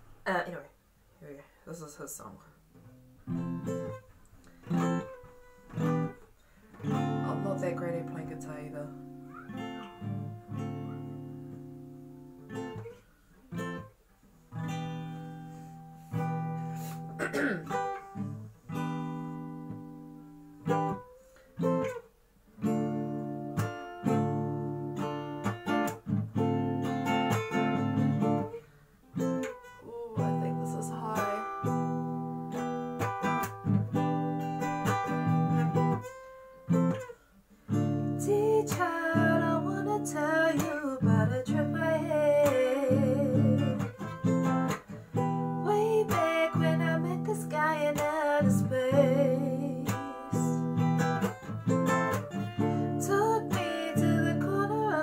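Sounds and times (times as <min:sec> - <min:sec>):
acoustic guitar strumming chords: 0:01.8 - 0:55.0.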